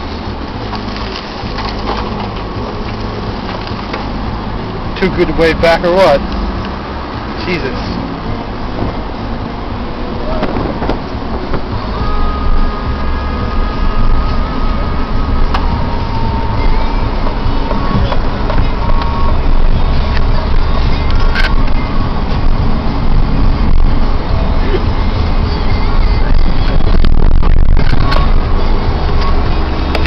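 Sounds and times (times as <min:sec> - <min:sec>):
car engine and road noise: 0:00.0 - 0:30.0.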